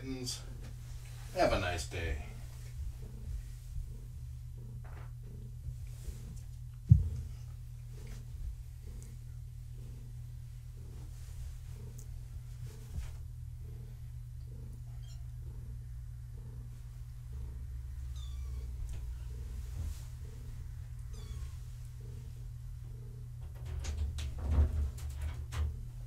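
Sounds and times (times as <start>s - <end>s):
cat purring: 0.0s - 26.0s
knocks: 6.8s - 7.4s
kitten mewing: 18.1s - 19.4s, 21.0s - 21.6s.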